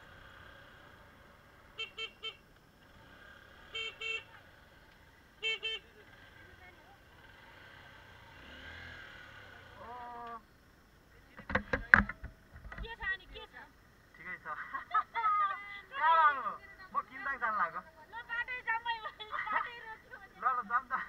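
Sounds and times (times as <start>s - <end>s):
faint road noise: 0.0s - 21.0s
vehicle horn beeping: 1.7s - 2.4s, 3.7s - 4.4s, 5.4s - 6.0s.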